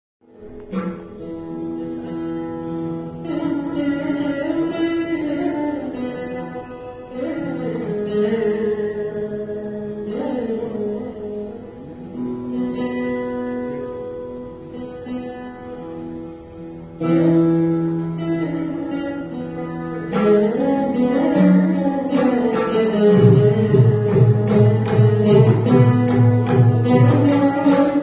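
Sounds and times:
plucked veenas with bent notes: 0.2 - 28.0.

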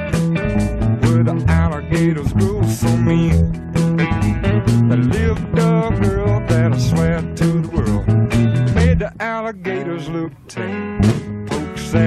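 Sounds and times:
blues-rock band playing: 0.0 - 12.0
electric bass guitar: 0.0 - 12.0
electric guitar riffs: 0.0 - 12.0.

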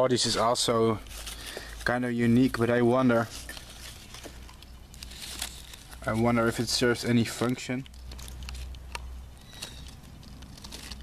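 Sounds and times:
twig and leaves rustling: 0.0 - 11.0.

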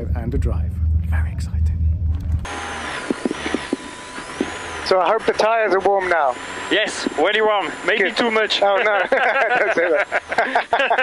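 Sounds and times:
car engine idling: 2.0 - 11.0.

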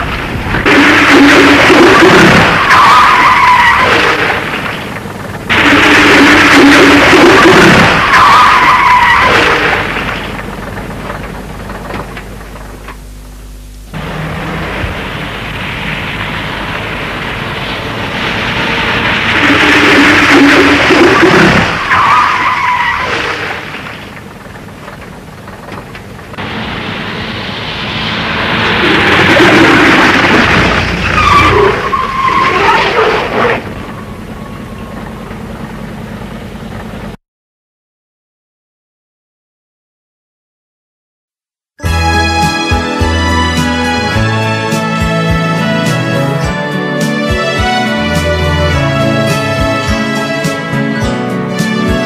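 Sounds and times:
bus tyres skidding on wet surface: 0.0 - 11.8, 14.0 - 34.4
tyre squeal: 8.0 - 9.6, 31.0 - 35.0.

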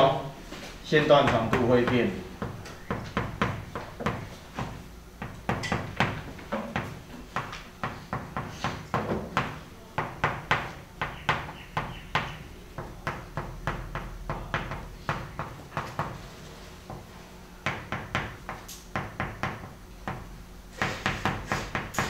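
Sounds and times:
chalk writing on chalkboard: 20.8 - 22.0.

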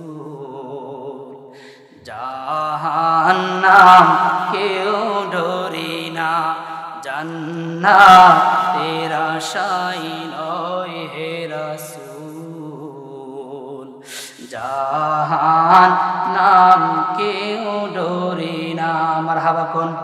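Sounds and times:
man chanting over loudspeaker: 0.0 - 1.4, 2.0 - 20.0.

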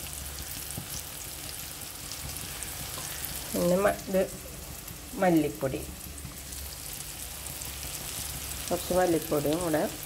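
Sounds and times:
vegetables sizzling in hot oil: 0.0 - 10.0.

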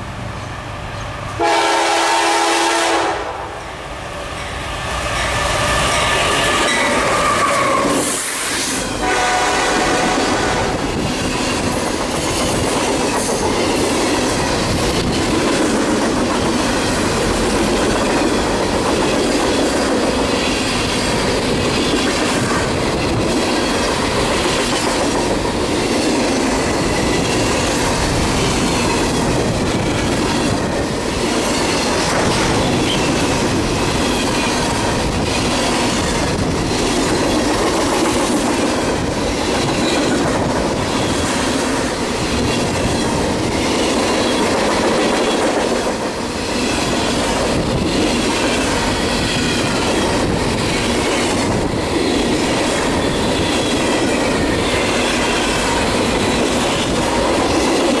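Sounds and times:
freight train rumbling past: 0.0 - 58.0
high wheel squeal: 5.1 - 8.9.

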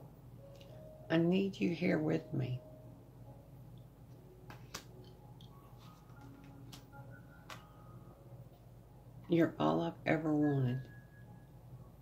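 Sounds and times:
card tapping onto cards: 4.5 - 5.1.

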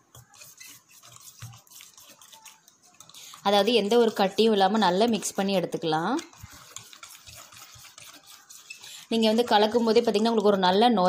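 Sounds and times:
spoon scraping and squelching paste: 0.0 - 10.9.

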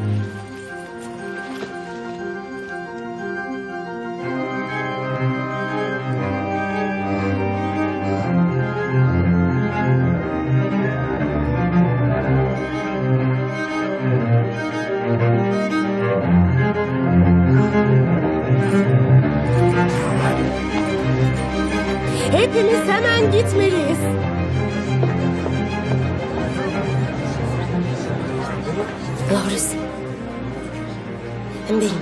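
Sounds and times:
low bowed strings: 0.0 - 32.0.

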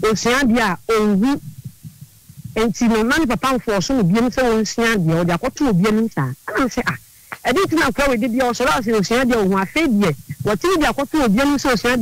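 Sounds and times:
faint low thumps: 0.0 - 11.8
person speaking: 0.0 - 12.0.

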